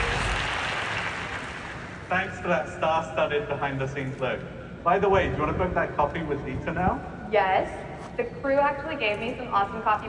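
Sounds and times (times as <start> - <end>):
audience applause: 0.0 - 2.1.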